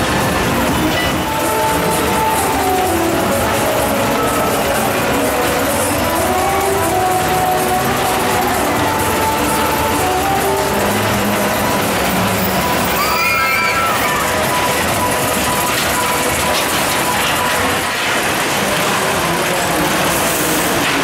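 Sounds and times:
coaster car running on steel track: 0:00.0 - 0:21.0
loud fairground ride music: 0:00.0 - 0:21.0.

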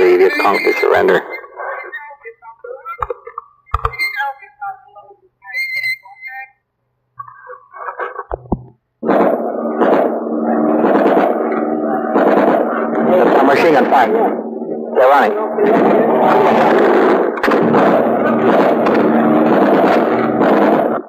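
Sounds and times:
distorted loudspeaker voice: 0:00.0 - 0:03.1, 0:10.3 - 0:17.1
faint broken voices: 0:10.1 - 0:20.2.

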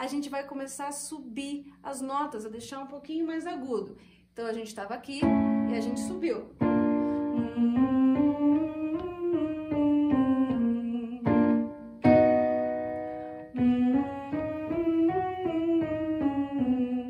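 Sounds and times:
electric keyboard playing scale: 0:05.2 - 0:17.0
keyboard chord: 0:05.2 - 0:17.0
woman humming: 0:07.4 - 0:11.6, 0:13.6 - 0:17.0.

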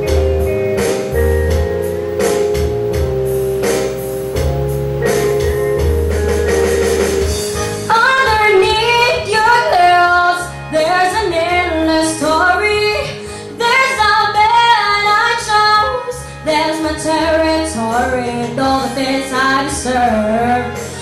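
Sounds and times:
backing music: 0:00.0 - 0:15.5
woman singing pop ballad: 0:07.8 - 0:21.0.

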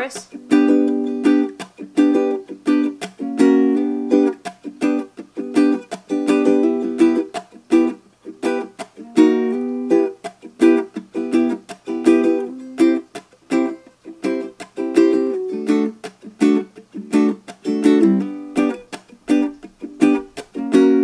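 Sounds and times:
ukulele strumming: 0:00.0 - 0:21.0.

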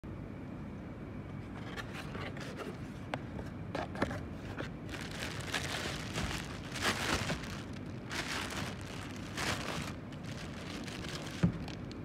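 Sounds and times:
cardboard scraping and rustling: 0:03.8 - 0:12.0
low background rumble: 0:04.5 - 0:12.0.

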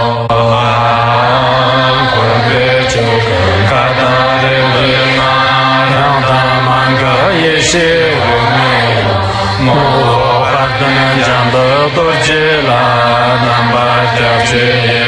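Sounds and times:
low drone: 0:00.0 - 0:15.0
person chanting a prayer: 0:00.0 - 0:15.0.

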